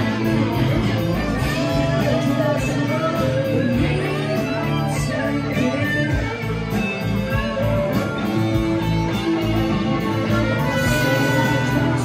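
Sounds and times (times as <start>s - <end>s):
bass and drums: 0.0s - 12.0s
electric guitars: 0.0s - 12.0s.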